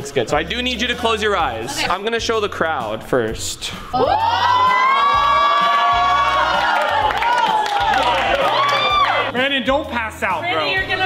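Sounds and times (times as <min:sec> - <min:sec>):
crowd exclaiming ooh: 0:04.0 - 0:09.3
crowd cheering: 0:04.0 - 0:09.4.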